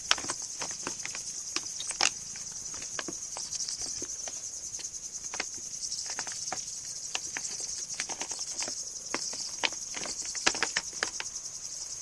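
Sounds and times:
crickets trilling: 0.0 - 12.0
paws scrabbling on plastic bag: 5.2 - 11.2.

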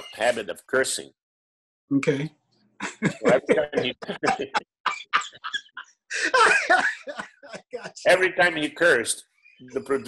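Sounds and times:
men laughing: 2.8 - 8.3.

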